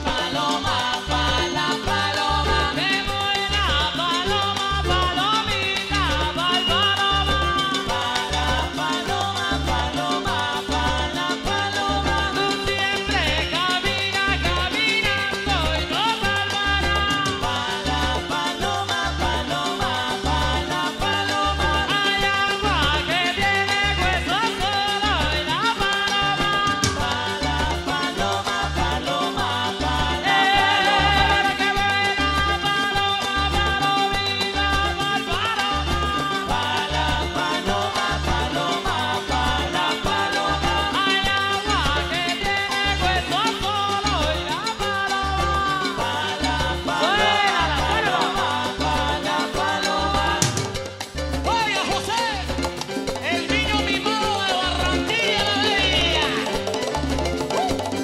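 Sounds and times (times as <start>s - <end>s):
live cumbia band playing: 0.0s - 58.0s
repeating bass line: 0.0s - 58.0s.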